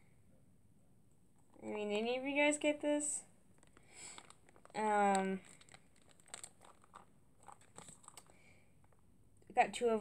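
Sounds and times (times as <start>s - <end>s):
sauce pouches crinkling: 3.6s - 9.0s.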